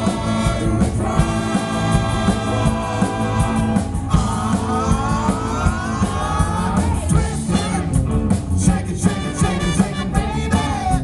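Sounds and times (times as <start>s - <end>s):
band playing rhythm and blues: 0.0s - 11.0s
drums fast beat: 0.0s - 11.0s.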